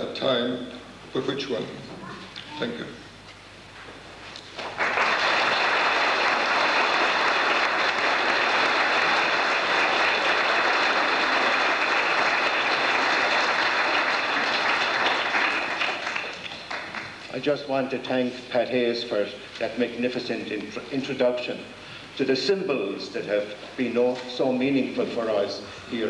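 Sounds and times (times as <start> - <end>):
crowd applauding: 4.5 - 17.3.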